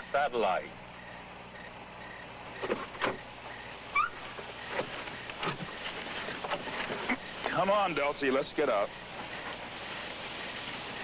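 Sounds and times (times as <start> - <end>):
car low hum: 0.0 - 11.0.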